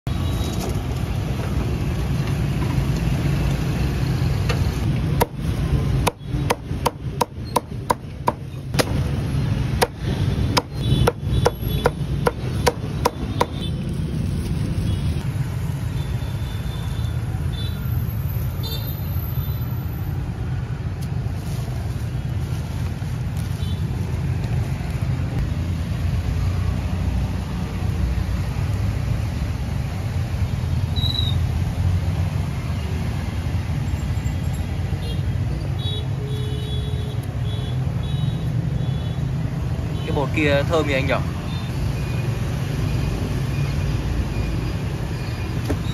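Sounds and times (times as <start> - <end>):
cleaver chopping on wooden block: 5.1 - 5.4, 6.0 - 9.0, 9.7 - 13.6.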